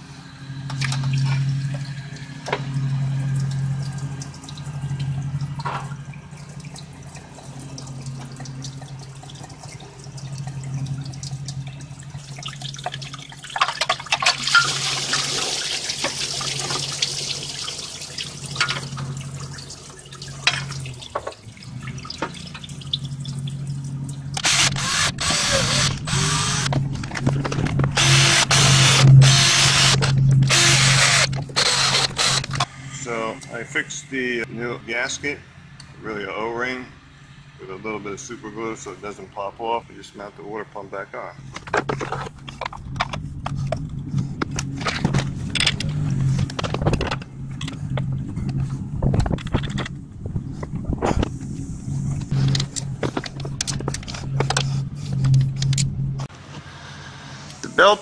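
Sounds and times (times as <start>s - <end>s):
low hum: 0.0s - 15.2s, 18.3s - 57.8s
cordless drill bursts: 24.4s - 26.7s, 28.0s - 32.6s.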